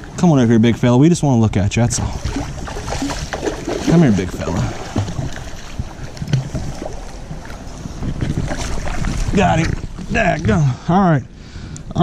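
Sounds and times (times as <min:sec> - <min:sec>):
wind on microphone: 0:00.0 - 0:12.0
fish thrashing in water: 0:02.0 - 0:10.2.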